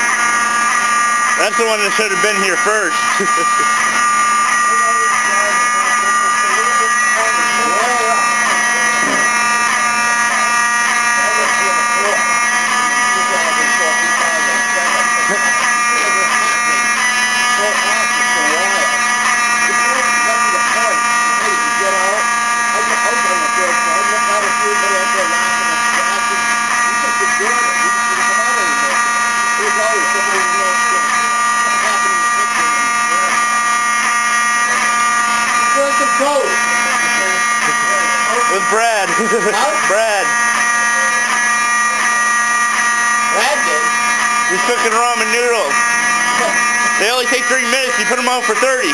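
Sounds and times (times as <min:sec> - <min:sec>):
fire alarm buzzing: 0:00.0 - 0:48.9.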